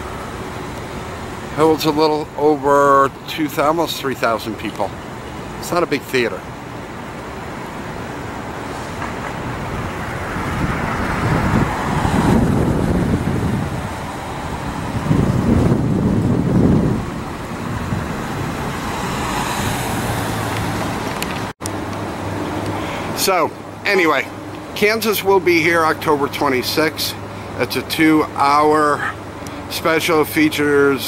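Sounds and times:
road traffic noise: 0.0s - 31.0s
vehicles passing: 0.0s - 31.0s.

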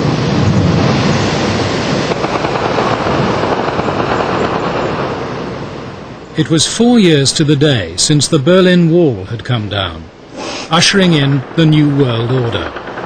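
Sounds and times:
stone bridge collapsing: 10.7s - 13.0s.

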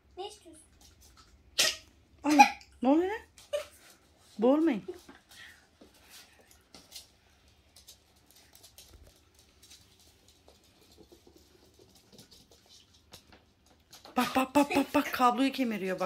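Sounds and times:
dog claws pattering on floor: 4.9s - 14.4s.

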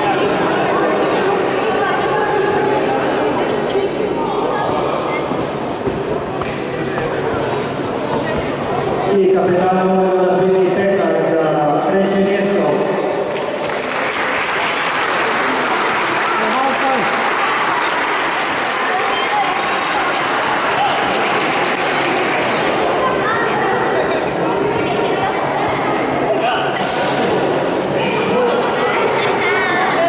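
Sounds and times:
audience applauding: 13.3s - 23.0s.

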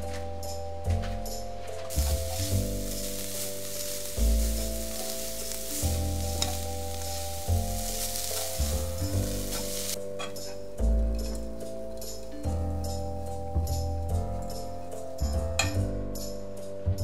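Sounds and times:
background music: 0.0s - 17.0s
food sizzling in a frying pan: 1.9s - 10.0s.

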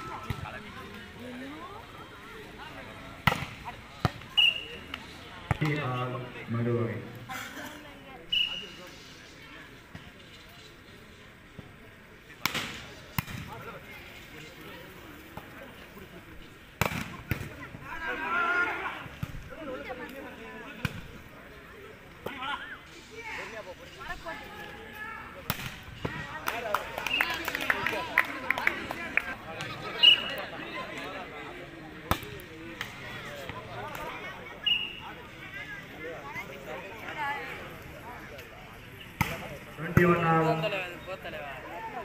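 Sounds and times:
crowd voices: 0.0s - 42.0s
spectators chattering: 0.0s - 42.0s.

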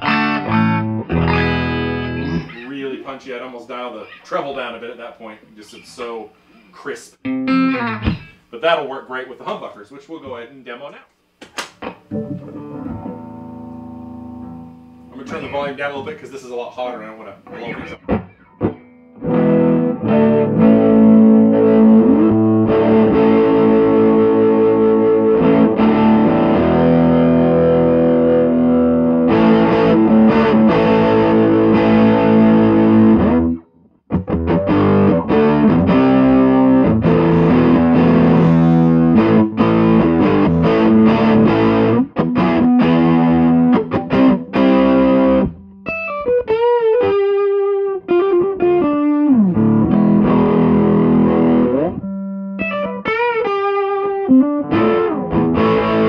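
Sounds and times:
guitar single-note phrase with vibrato: 0.0s - 2.6s, 7.2s - 8.2s, 12.1s - 15.8s, 17.5s - 33.6s, 34.3s - 47.1s, 48.4s - 56.0s
overdriven electric guitar chords: 0.0s - 2.6s, 7.2s - 8.4s, 11.8s - 15.7s, 17.4s - 56.0s.

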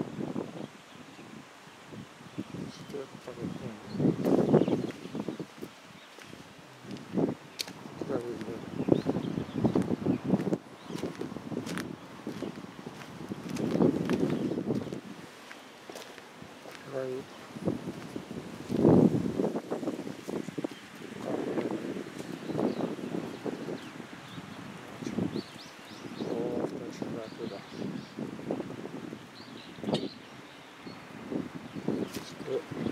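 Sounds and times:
faint outdoor background noise: 0.0s - 32.9s
man speaking: 2.8s - 3.9s, 8.0s - 8.6s, 16.8s - 17.3s, 26.3s - 27.7s, 32.3s - 32.7s.

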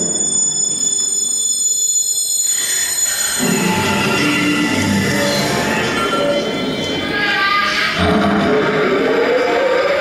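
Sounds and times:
high piercing tones: 0.0s - 8.0s.

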